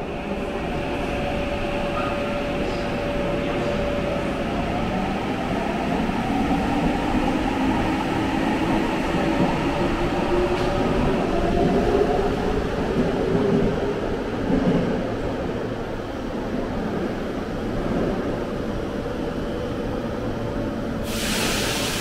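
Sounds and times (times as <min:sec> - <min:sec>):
subway train pulling out: 0:00.0 - 0:22.0.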